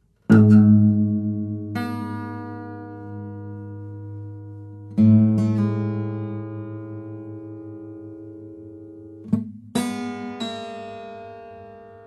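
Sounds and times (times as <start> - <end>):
acoustic guitar chords and plucks: 0.0 - 12.0.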